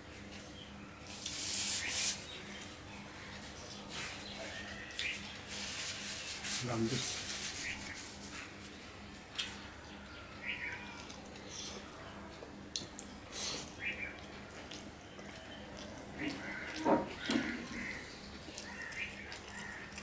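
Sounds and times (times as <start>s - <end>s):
paper tissue rubbing on face: 3.9s - 8.8s.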